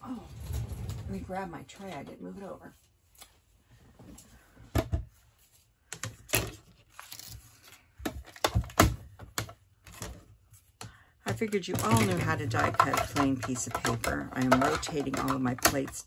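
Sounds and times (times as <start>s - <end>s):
machine and plates knocking and clicking: 11.3s - 16.0s.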